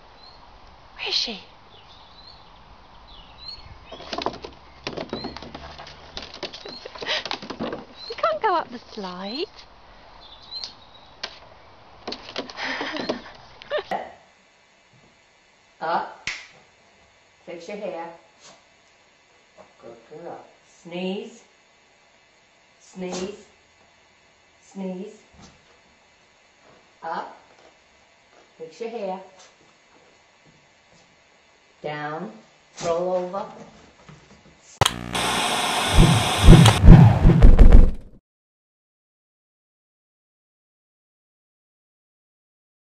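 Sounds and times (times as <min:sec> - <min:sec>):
faint outdoor hiss: 0:00.0 - 0:33.6
puppy paws clicking on plastic: 0:03.9 - 0:08.3
sharp click: 0:34.8 - 0:38.0
heavy low thumps: 0:34.9 - 0:38.2.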